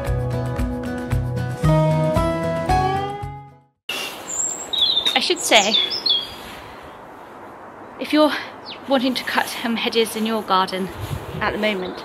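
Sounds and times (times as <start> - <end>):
background music: 0.0 - 3.7
small birds chirping: 3.9 - 7.2, 7.8 - 10.8.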